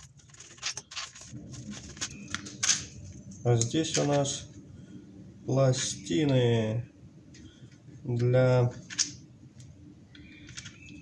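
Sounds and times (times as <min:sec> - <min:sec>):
paper envelope rustling: 0:00.0 - 0:03.3.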